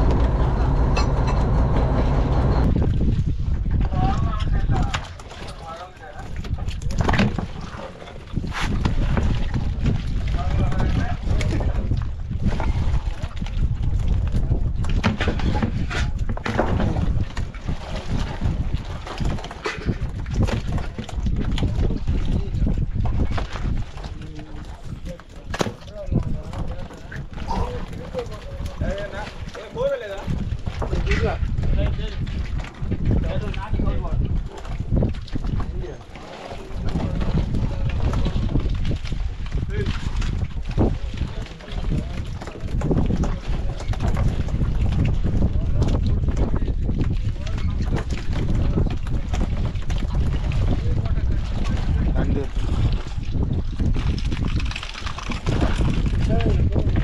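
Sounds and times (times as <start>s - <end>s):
wind and boat rumble: 0.0s - 57.0s.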